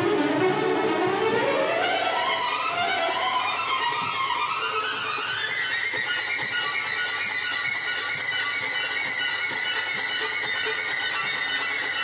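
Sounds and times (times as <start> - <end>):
violins playing rapid high notes: 0.0 - 8.1.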